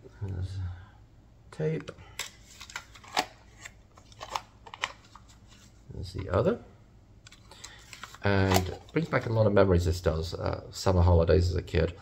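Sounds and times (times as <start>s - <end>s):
plastic cassette clicks and scrapes: 2.2s - 5.3s, 7.3s - 8.9s.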